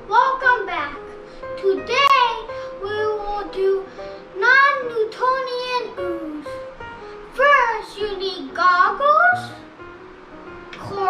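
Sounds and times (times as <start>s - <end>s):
backing music: 0.0s - 11.0s
child singing: 1.6s - 6.5s, 7.4s - 9.6s, 10.8s - 11.0s.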